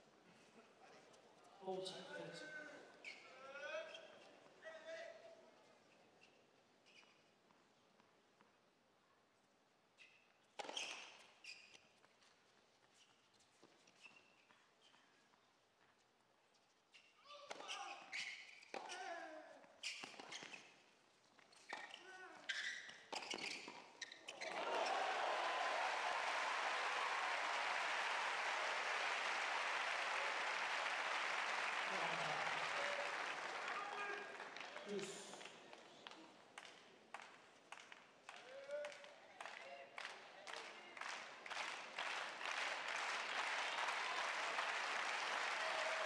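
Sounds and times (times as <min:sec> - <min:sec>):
crowd applauding: 0:24.3 - 0:35.5, 0:39.5 - 0:46.0.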